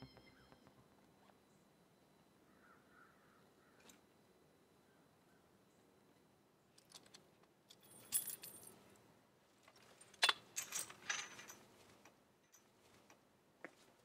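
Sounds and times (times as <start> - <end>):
metal chain rattling and clinking: 7.7 - 8.8, 9.8 - 12.8.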